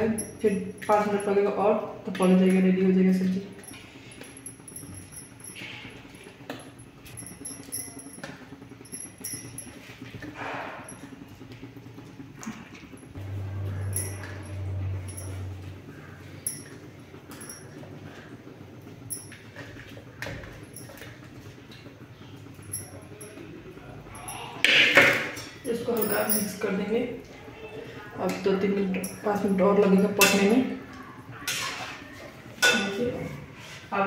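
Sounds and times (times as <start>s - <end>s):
metal pot clatter: 31.4s - 33.0s.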